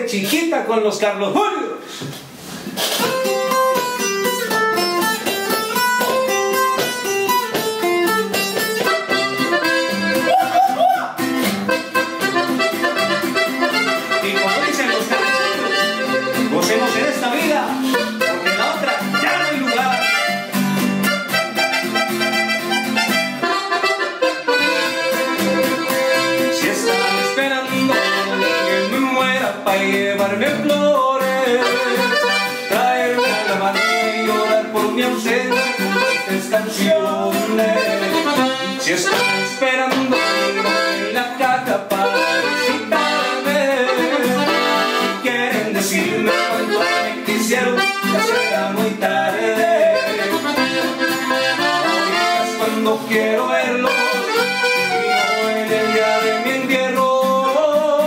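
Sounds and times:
twelve-string acoustic guitar: 0:02.6 - 0:58.0
button accordion playing: 0:02.8 - 0:10.6, 0:11.2 - 0:29.2, 0:31.4 - 0:56.7.

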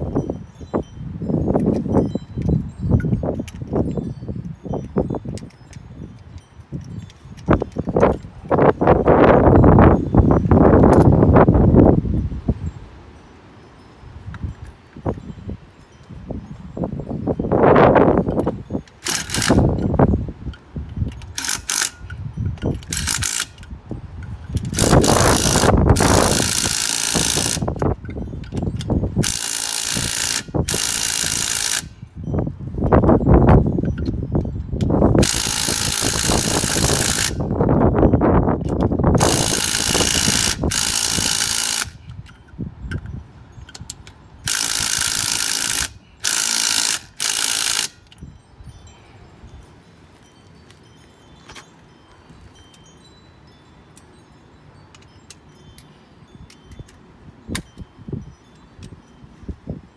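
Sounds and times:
cordless power tool bursts: 0:19.0 - 0:19.7, 0:21.2 - 0:22.1, 0:22.8 - 0:23.7, 0:24.6 - 0:27.8, 0:29.2 - 0:32.0, 0:35.2 - 0:37.5, 0:39.2 - 0:42.2, 0:44.4 - 0:48.1.

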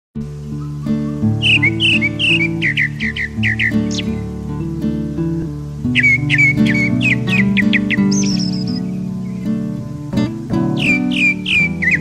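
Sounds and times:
soft instrumental music: 0:00.2 - 0:12.0
thrush singing whistled notes: 0:00.6 - 0:12.0.

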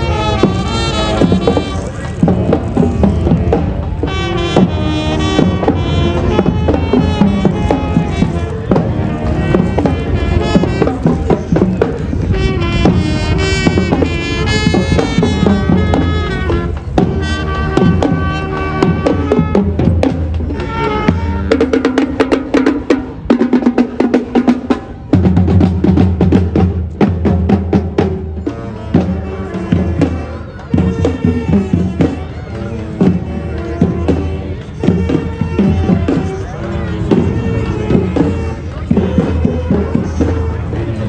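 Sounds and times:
drums: 0:00.0 - 0:41.0
marching band playing: 0:00.0 - 0:41.0.

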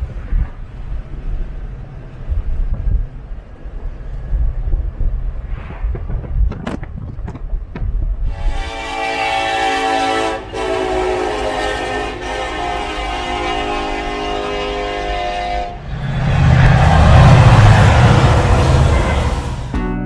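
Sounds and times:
horn chord blasts: 0:08.4 - 0:15.8
loud deep rumbling: 0:15.7 - 0:19.8.

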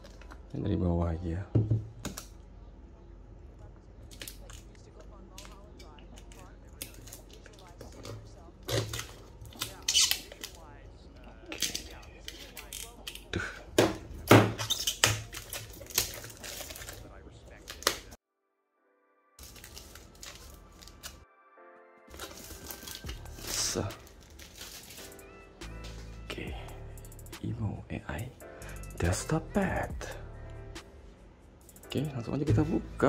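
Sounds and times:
plastic shrink-wrap crinkling: 0:14.6 - 0:18.2, 0:19.4 - 0:21.2, 0:22.1 - 0:25.3.

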